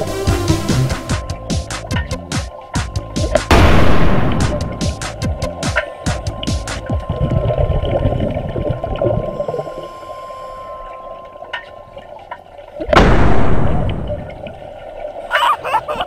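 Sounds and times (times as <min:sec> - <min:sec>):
faint steady hum: 0:03.6 - 0:16.0
underwater exhaled bubbles rushing: 0:06.2 - 0:10.0.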